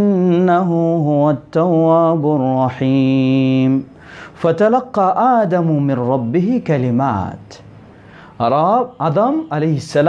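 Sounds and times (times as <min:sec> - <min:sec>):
man chanting melodically: 0:00.0 - 0:07.7, 0:08.4 - 0:10.0.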